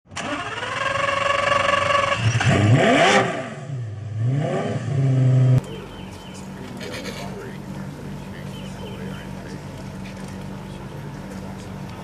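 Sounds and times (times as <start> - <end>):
car engine revving: 0.2 - 12.0.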